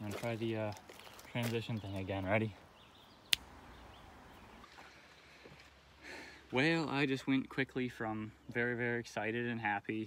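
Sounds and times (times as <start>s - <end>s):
faint outdoor background noise: 0.0s - 10.0s
finger snap: 3.3s - 3.5s.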